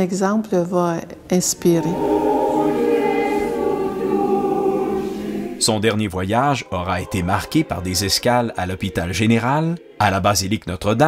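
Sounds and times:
choir holding a chord: 1.4 - 10.7.

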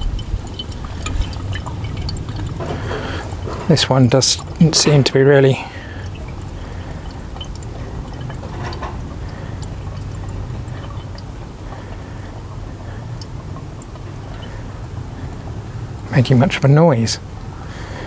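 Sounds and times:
faint gas and liquid flow: 0.0 - 18.0.

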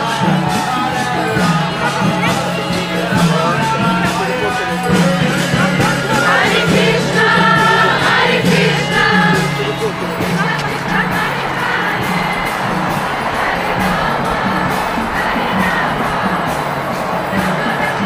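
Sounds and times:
group chanting: 0.0 - 18.0
steady percussion beat: 0.0 - 18.0.

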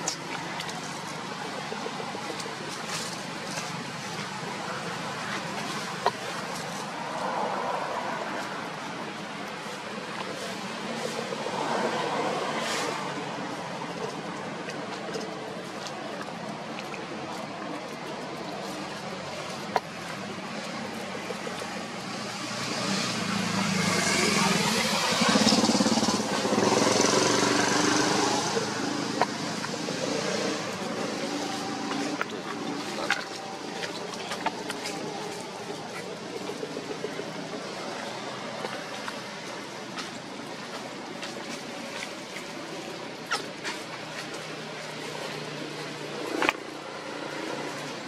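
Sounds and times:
motorbike passing: 18.6 - 48.0.

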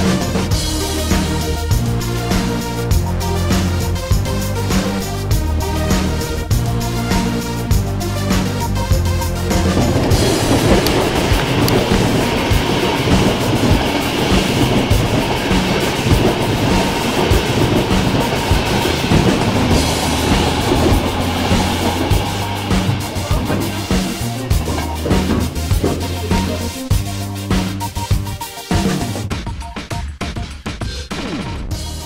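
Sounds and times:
train wheels clattering: 0.0 - 29.3
music with steady bass beat: 0.0 - 32.0.

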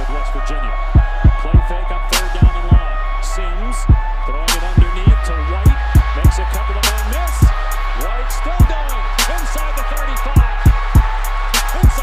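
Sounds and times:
hip hop beat with bass kick: 0.0 - 12.0.

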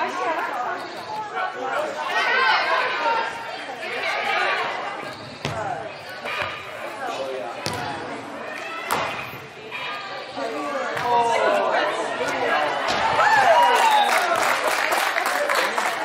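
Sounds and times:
voices calling out in a hall: 0.0 - 16.0
soccer ball being kicked: 7.6 - 7.9.

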